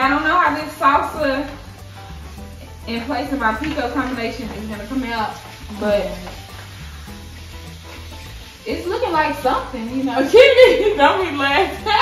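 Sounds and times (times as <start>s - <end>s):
shrimp sizzling in a skillet: 0.0s - 12.0s
wooden spatula stirring: 1.3s - 10.4s.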